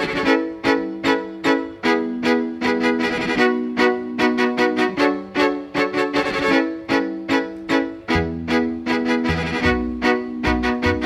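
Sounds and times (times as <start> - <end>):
violin short bowed notes: 0.0 - 11.0.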